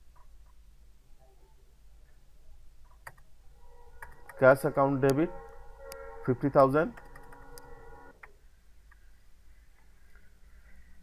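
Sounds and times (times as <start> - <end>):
keyboard keys clicking: 6.9 - 7.7.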